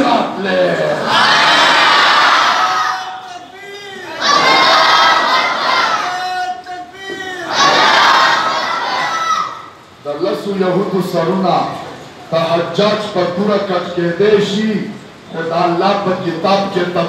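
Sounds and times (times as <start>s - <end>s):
man calling out: 2.9s - 4.2s, 6.0s - 7.6s.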